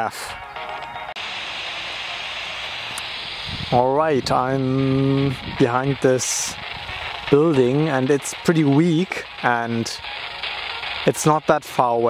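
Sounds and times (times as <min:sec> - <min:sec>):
radio static hiss: 0:01.2 - 0:12.0.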